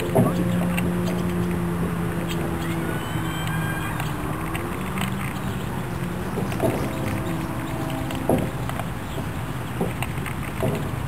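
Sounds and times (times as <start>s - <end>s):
low motor hum: 0.0s - 11.0s
short knocks: 6.3s - 11.0s.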